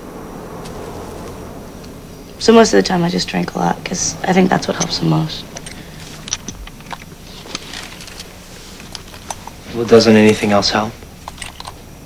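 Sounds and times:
low buzzing hum: 0.0s - 12.0s.

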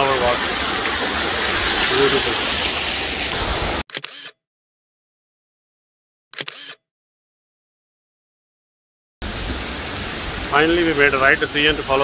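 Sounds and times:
waterfall rushing hiss: 0.0s - 3.8s, 9.2s - 12.0s.

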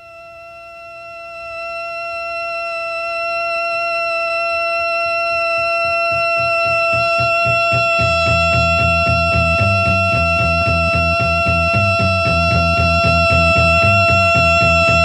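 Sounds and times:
sustained electric guitar note: 5.4s - 15.0s
pulsing low rhythm: 6.0s - 15.0s.

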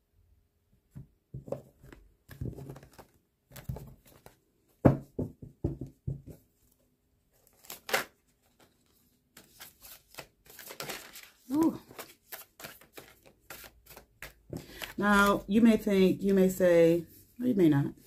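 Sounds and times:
cards sliding and rustling: 7.4s - 15.0s.

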